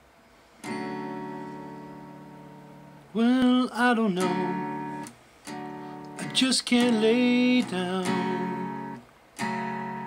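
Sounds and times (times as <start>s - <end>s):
faint room hiss: 0.0s - 10.0s
acoustic guitar chord ringing: 0.6s - 10.0s.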